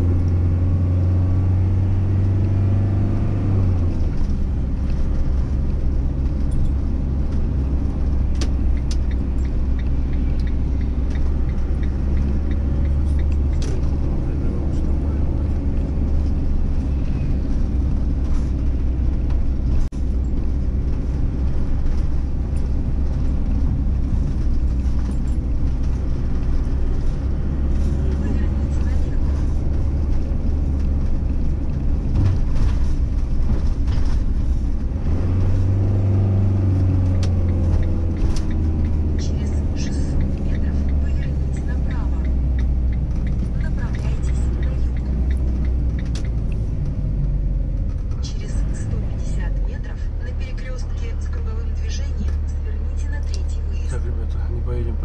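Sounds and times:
engine and road rumble: 0.0s - 55.0s.

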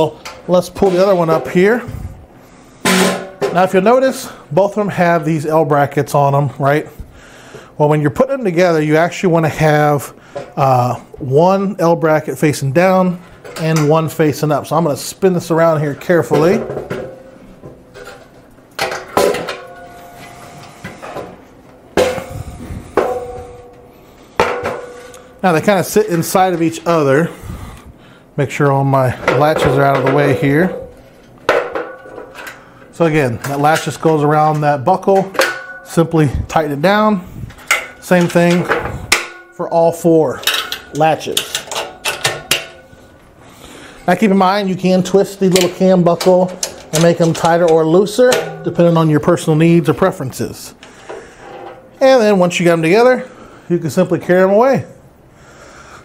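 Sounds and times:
metal ramps clanking: 22.0s - 23.8s, 45.6s - 49.1s.

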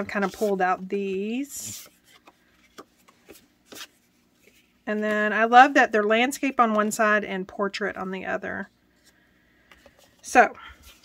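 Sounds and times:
cards rustling: 1.6s - 4.7s.

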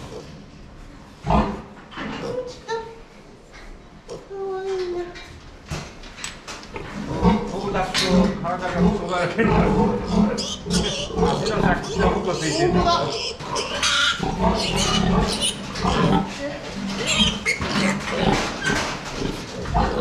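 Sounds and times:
piglet squealing loudly: 11.9s - 15.6s, 17.0s - 17.9s.

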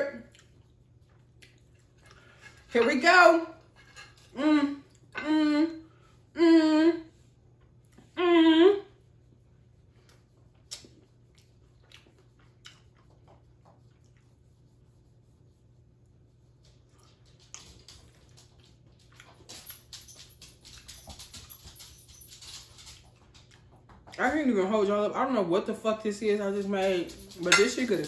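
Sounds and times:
mouth noises while eating: 10.0s - 15.6s.

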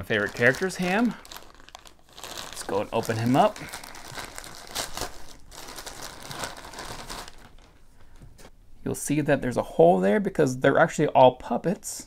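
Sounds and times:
plastic bag crinkling: 0.0s - 7.8s.

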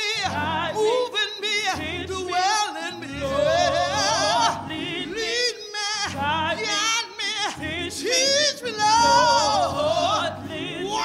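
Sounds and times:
woman singing gospel solo: 0.0s - 11.0s.

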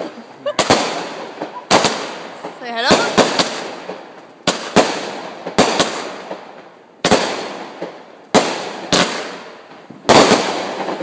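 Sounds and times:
firework bangs: 0.0s - 11.0s.

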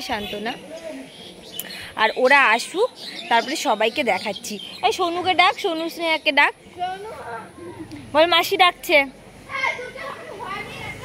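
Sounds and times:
child shouting high-pitched calls: 9.5s - 11.0s.

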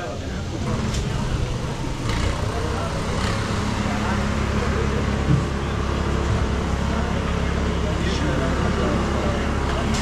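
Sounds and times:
chatter of passers-by: 0.0s - 10.0s
motor traffic rumble: 0.0s - 10.0s.

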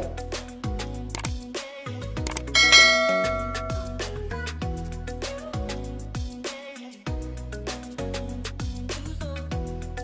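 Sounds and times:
background music with beat: 0.0s - 10.0s
notification bell ding: 2.6s - 4.1s.

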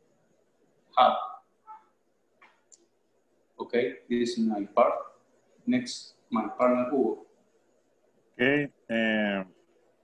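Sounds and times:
man saying short word: 8.4s - 9.4s.

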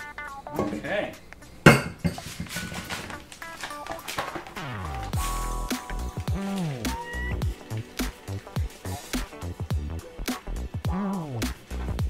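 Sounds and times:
electronic music with steady beat: 4.7s - 12.0s.

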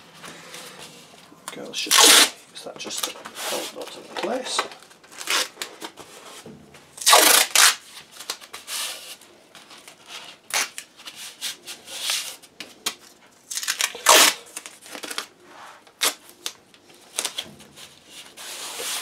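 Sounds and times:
hand rubbing tape strips: 0.1s - 6.4s, 7.0s - 12.5s, 13.5s - 19.0s
masking tape tearing: 1.8s - 3.8s, 4.6s - 6.0s, 7.0s - 8.5s, 10.2s - 10.9s, 13.5s - 15.3s, 15.9s - 17.5s.

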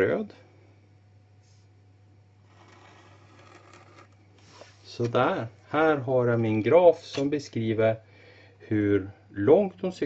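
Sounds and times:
felt-tip pen scratching paper: 2.4s - 4.6s.

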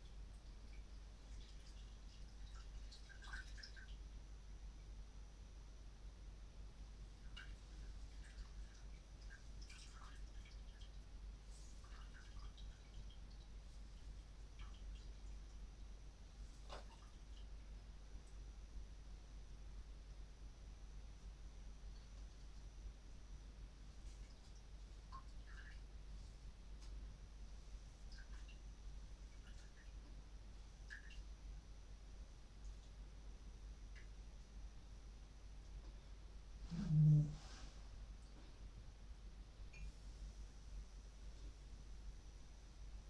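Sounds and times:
low steady hum: 0.0s - 43.0s.

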